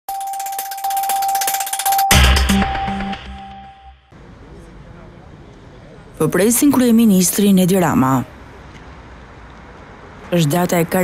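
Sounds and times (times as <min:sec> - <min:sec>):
steady high electronic tone: 0:00.1 - 0:04.1.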